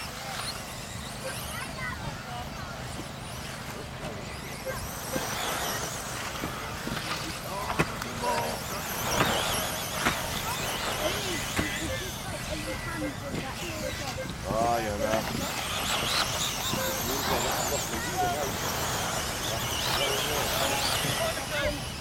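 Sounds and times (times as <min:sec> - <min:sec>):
rc buggy motors whining: 0:00.0 - 0:22.0
spectators chatting: 0:00.0 - 0:22.0.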